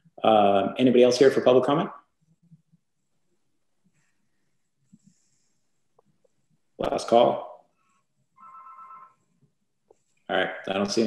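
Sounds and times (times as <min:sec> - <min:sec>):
faint electronic ringing tone: 0:08.4 - 0:09.3.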